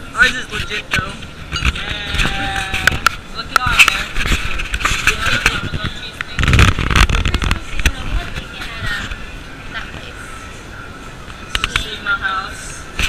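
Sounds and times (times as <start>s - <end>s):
indistinct voices and chatter: 0.0s - 13.0s.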